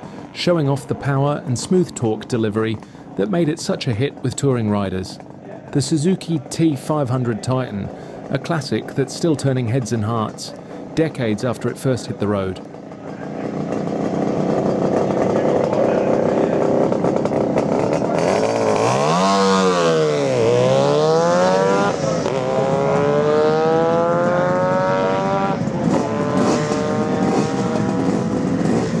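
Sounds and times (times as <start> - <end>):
motorcycle engine accelerating: 0.0 - 29.0.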